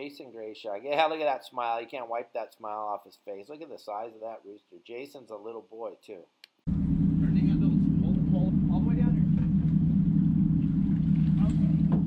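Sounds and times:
boat engine drone: 6.7 - 12.0.

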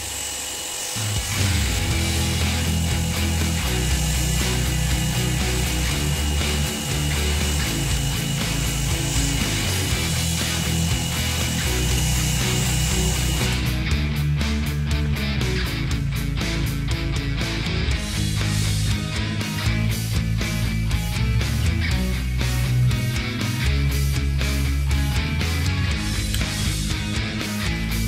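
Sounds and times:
pressure washer whine: 0.0 - 14.0
rock music with electric guitar: 0.0 - 28.0.

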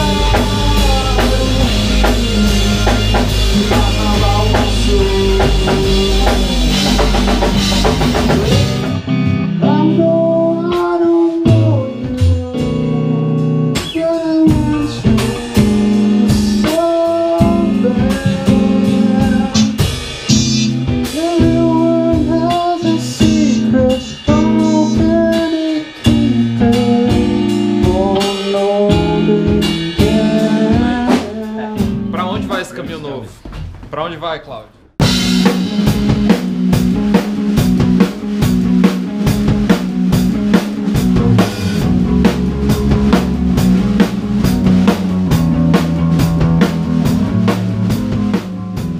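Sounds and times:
man singing: 0.0 - 8.9, 9.5 - 32.9, 41.0 - 43.2
electric guitar: 0.0 - 32.4, 35.0 - 48.9
live band music: 0.0 - 48.9.

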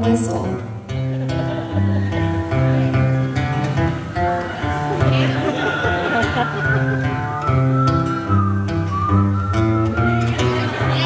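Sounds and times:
acoustic guitars playing chords: 0.0 - 11.0
person whistling a melody: 6.2 - 10.4.

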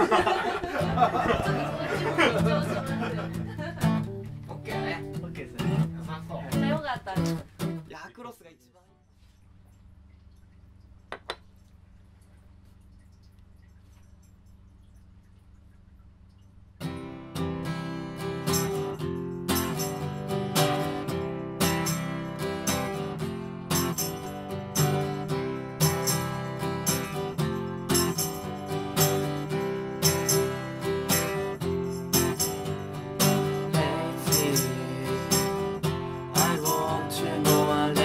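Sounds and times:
acoustic guitar strumming chords: 0.7 - 7.9, 16.8 - 38.0.

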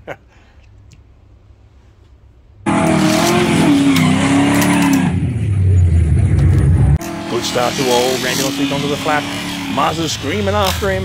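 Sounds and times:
deeper tone: 2.6 - 7.5
racing car engine: 2.6 - 11.0.

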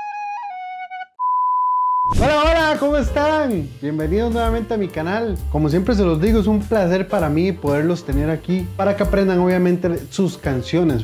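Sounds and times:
man speaking: 2.1 - 11.0.

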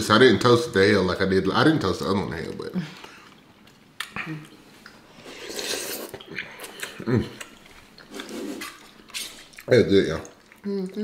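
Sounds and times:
noodles chewed and slurped: 2.3 - 11.0.

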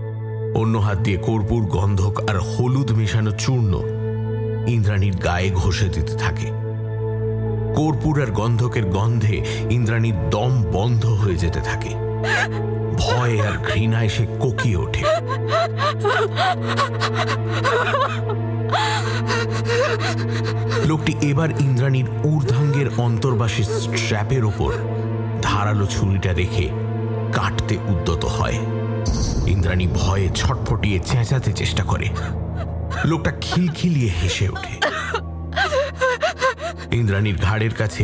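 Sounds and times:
low droning music: 0.0 - 38.0
woman whimpering and sobbing: 12.2 - 25.1, 32.2 - 37.0.

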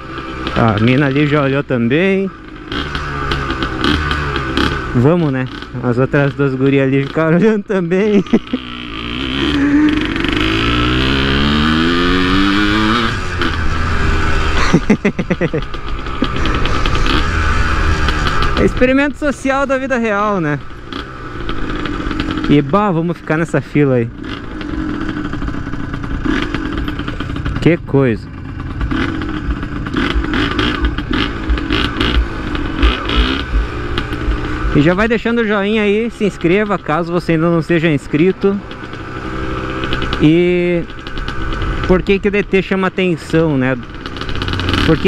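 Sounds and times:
two-stroke engine revving: 0.0 - 45.0.

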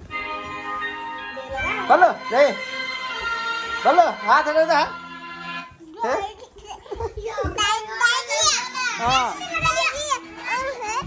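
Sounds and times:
young children calling and babbling: 6.3 - 11.0.

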